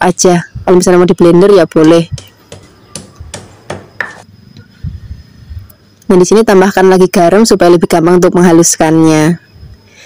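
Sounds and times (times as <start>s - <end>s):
stone pestle pounding in mortar: 2.1s - 4.2s.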